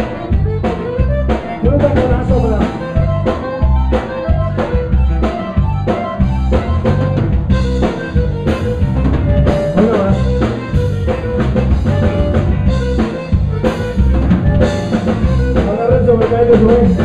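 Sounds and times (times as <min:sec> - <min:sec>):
button accordion: 0:00.0 - 0:17.0
drum kit and congas: 0:00.0 - 0:17.0
electric bass: 0:00.0 - 0:17.0.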